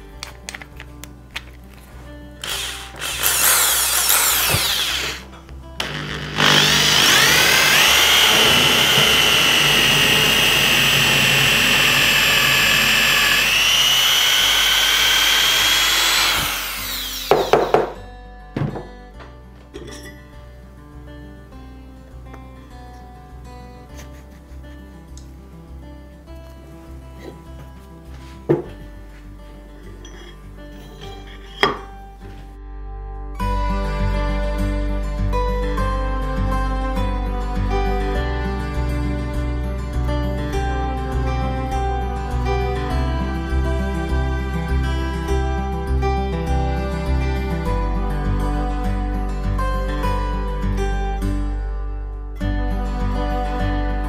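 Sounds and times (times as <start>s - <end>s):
soft background music: 0.0s - 10.0s, 17.0s - 54.0s
electric drill boring into wood: 2.4s - 18.0s
metal base knocking on tabletop: 18.6s - 18.9s.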